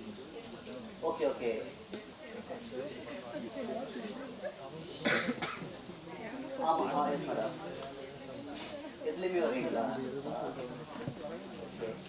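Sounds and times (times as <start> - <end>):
person coughing: 5.0 - 5.6.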